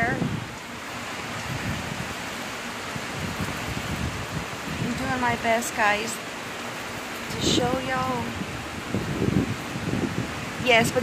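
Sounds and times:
heavy rain pouring: 0:00.0 - 0:11.0.

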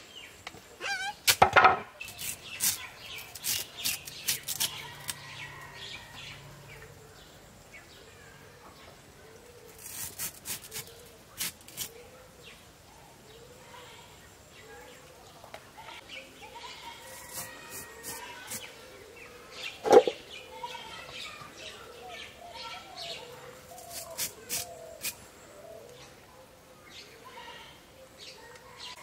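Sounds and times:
banana stem being cut: 0:00.8 - 0:05.2, 0:09.7 - 0:12.0, 0:17.1 - 0:18.7, 0:23.8 - 0:25.2.

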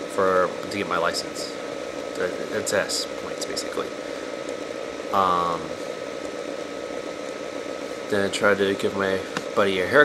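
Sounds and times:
faint high whine: 0:00.0 - 0:10.0
room noise hiss: 0:00.0 - 0:10.0.

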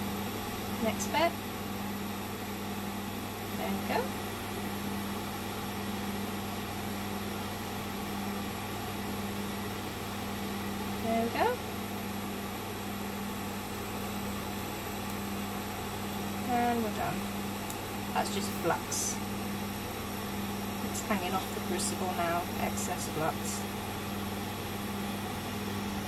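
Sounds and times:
extractor fan humming: 0:00.0 - 0:26.0.

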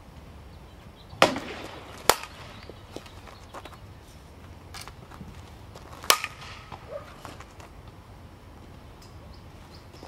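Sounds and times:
bat hitting softball: 0:01.2 - 0:02.7, 0:06.0 - 0:07.2.

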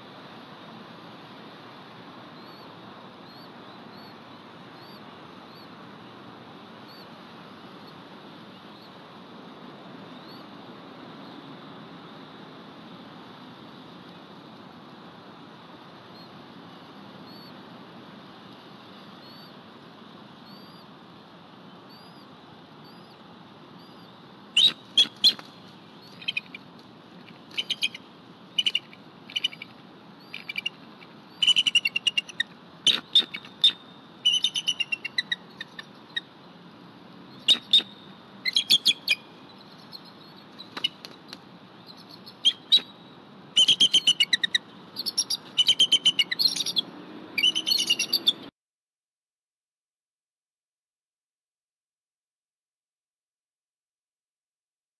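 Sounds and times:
eagle high rapid chirping: 0:27.4 - 0:36.3, 0:43.6 - 0:46.8, 0:47.4 - 0:48.4.

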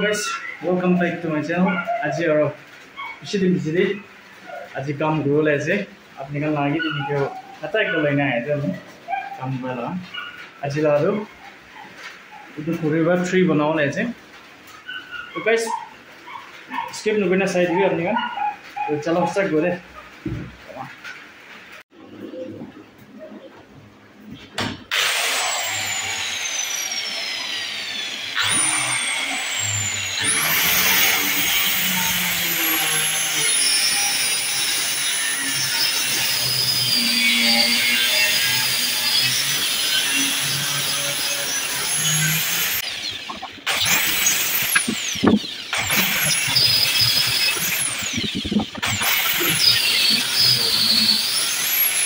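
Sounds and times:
circular saw cutting wood: 0:24.9 - 0:52.0.

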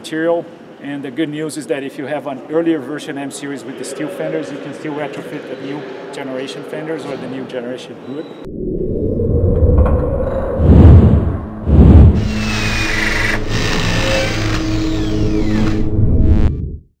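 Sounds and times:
heavy booms: 0:08.5 - 0:12.7
deep rumbling drone: 0:08.5 - 0:16.9.

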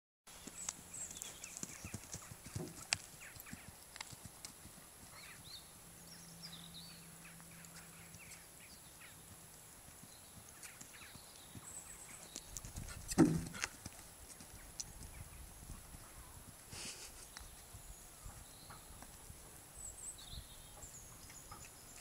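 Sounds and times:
horse hoofbeats on sand: 0:00.4 - 0:05.6, 0:09.8 - 0:16.6.

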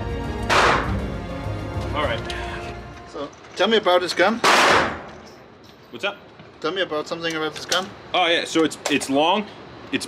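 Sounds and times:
background music: 0:00.0 - 0:04.0
loud gunshot: 0:00.5 - 0:01.0, 0:04.4 - 0:05.1.

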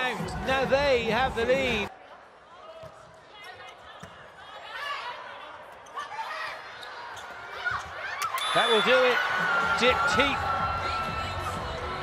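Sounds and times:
arena crowd voices: 0:01.6 - 0:12.0.

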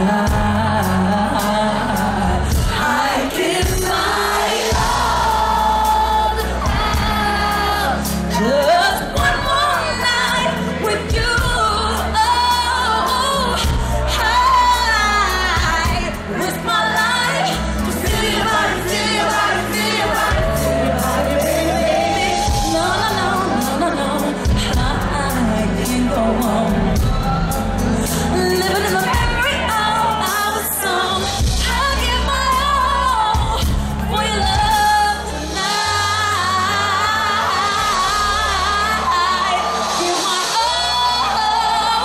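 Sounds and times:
band accompaniment: 0:00.0 - 0:42.0
woman singing pop ballad: 0:00.0 - 0:42.0.

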